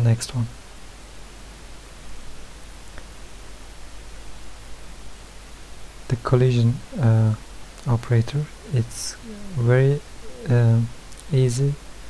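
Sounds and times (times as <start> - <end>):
microphone hiss and room hum: 0.0 - 12.0.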